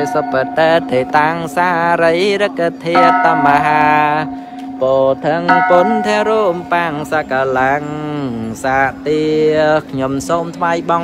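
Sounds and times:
person singing a slow chant: 0:00.0 - 0:11.0.

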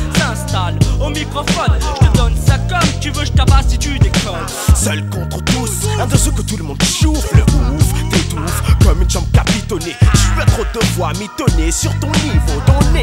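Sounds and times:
deep bass line: 0:00.0 - 0:13.0
rapping over a hip-hop beat: 0:00.0 - 0:13.0.

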